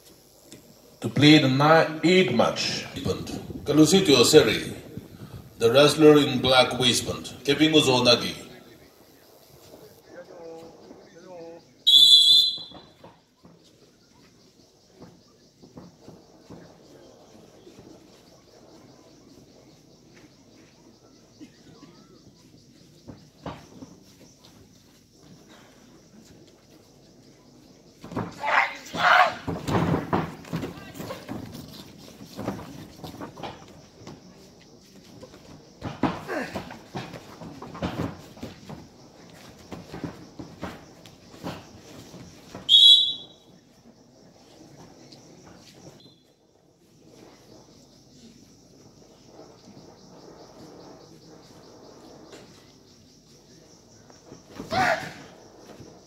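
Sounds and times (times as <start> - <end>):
short shrill blast: 11.9 - 12.8.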